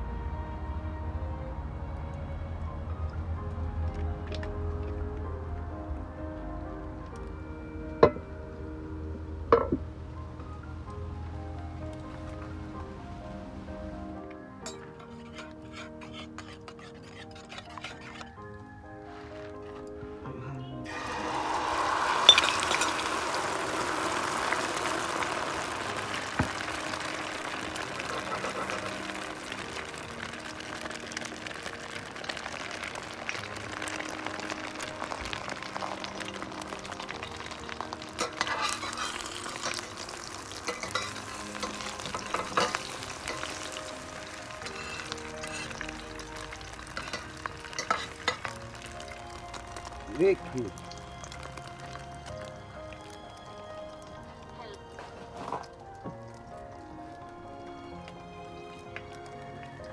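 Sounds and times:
egg mixture sizzling in oil: 0:15.0 - 0:18.4, 0:20.9 - 0:54.2.

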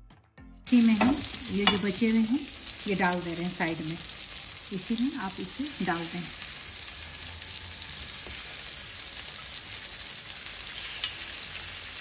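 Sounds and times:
patties sizzling in hot oil: 0:00.7 - 0:12.0.

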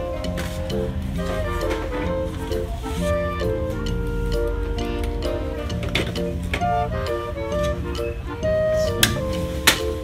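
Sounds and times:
melody of held notes: 0:00.0 - 0:10.0.

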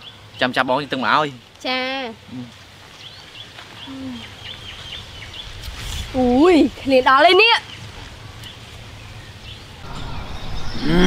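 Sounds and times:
outdoor background noise: 0:00.0 - 0:11.0
small birds chirping: 0:00.0 - 0:11.0.

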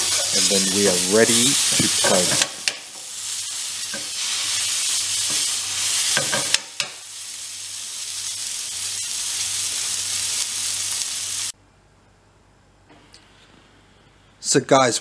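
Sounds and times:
meat sizzling in a frying pan: 0:00.0 - 0:11.6.

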